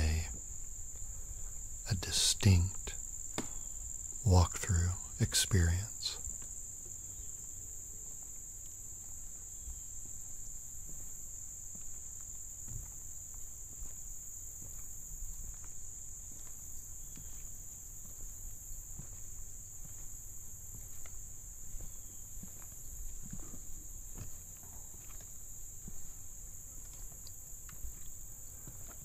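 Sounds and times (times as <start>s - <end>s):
crickets chirping: 0.0s - 29.0s
footsteps on wooden planks: 9.0s - 29.0s.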